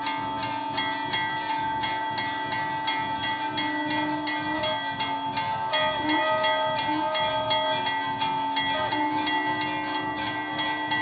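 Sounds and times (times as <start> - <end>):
large brass bell ringing: 0.0 - 11.0.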